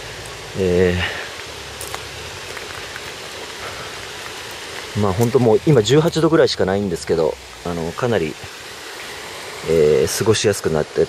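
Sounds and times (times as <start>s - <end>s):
faint patter of rain: 0.0s - 11.0s
hiss of water: 0.0s - 11.0s.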